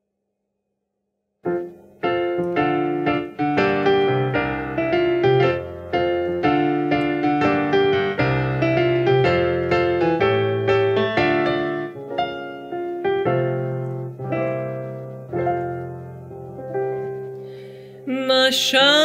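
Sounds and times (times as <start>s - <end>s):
solo piano chords: 1.5s - 19.0s.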